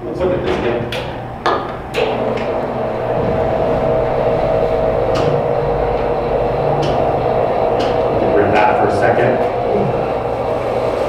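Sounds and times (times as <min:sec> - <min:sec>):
machine hum with tones: 0:00.0 - 0:11.0.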